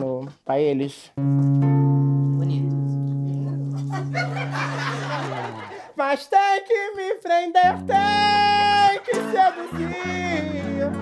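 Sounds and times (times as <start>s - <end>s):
guitar string plucked: 1.2s - 4.6s.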